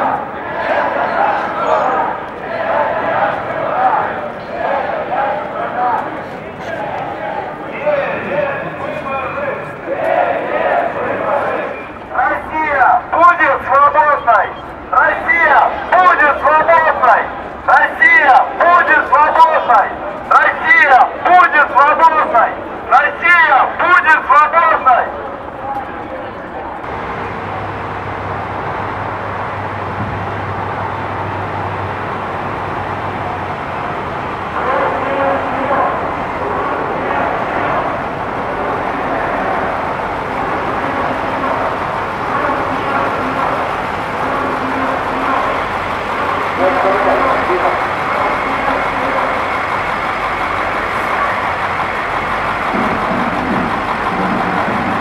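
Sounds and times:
voices murmuring: 0:00.0 - 0:30.0, 0:30.8 - 0:55.0
street noise: 0:00.0 - 0:55.0
vehicle engine hum: 0:25.0 - 0:55.0.

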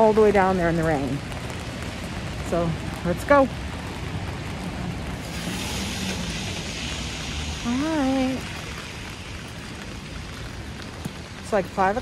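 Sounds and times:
rain on wet pavement: 0:00.0 - 0:12.0.

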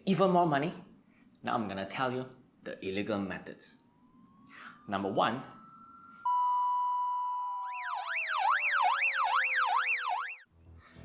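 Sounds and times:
police siren wailing: 0:03.7 - 0:10.5.

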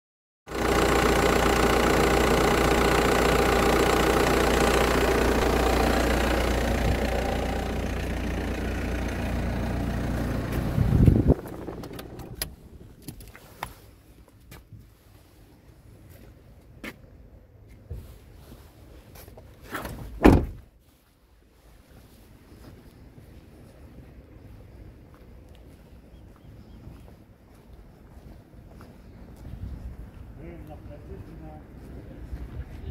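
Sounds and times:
car engine running: 0:00.5 - 0:13.6
car door shutting: 0:10.5 - 0:13.2, 0:19.8 - 0:20.6.

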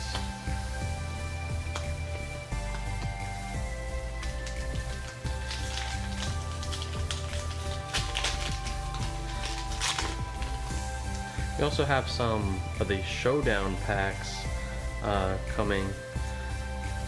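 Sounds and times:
background music: 0:00.0 - 0:17.0
foil wrapper crinkling: 0:04.0 - 0:11.4.

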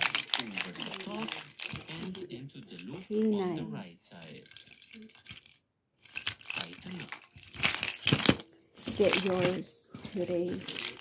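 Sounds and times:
metal keychains jangling: 0:00.0 - 0:02.2, 0:04.3 - 0:11.0.

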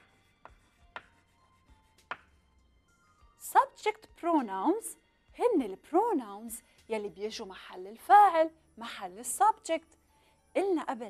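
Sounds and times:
chalk tapping on blackboard: 0:00.0 - 0:02.4.

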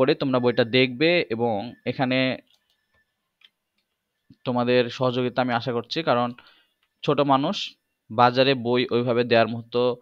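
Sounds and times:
man speaking: 0:00.0 - 0:02.6, 0:04.3 - 0:10.0
faint irregular ticks: 0:02.4 - 0:04.3.

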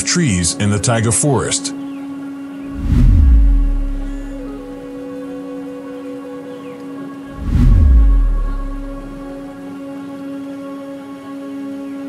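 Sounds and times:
slow sustained chord music: 0:00.0 - 0:12.0.

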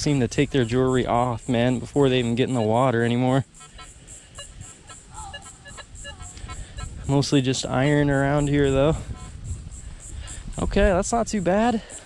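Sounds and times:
metal detector beeping: 0:00.1 - 0:09.3.

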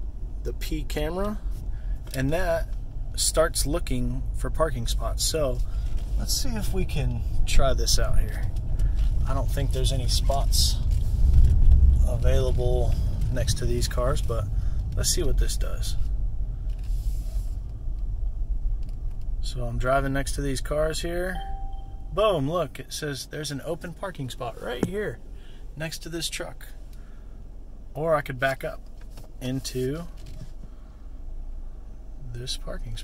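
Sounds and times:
car cabin and road noise: 0:00.0 - 0:33.0.

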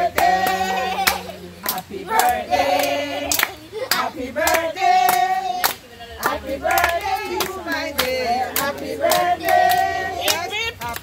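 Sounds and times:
group singing: 0:00.0 - 0:11.0
hands clapping to a beat: 0:00.0 - 0:11.0.

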